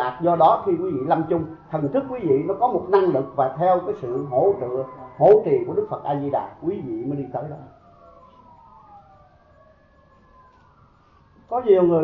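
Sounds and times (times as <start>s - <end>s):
faint siren wailing: 0.0s - 12.0s.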